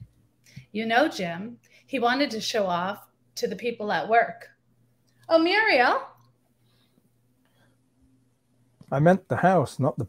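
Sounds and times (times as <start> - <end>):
woman reading aloud: 0.8 - 4.5, 5.3 - 6.2
faint breath: 6.5 - 8.0.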